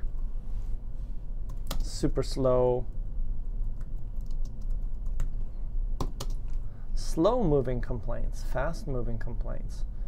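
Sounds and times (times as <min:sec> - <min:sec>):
typing on computer keyboard: 0:01.5 - 0:01.9, 0:03.8 - 0:05.4, 0:06.0 - 0:06.4.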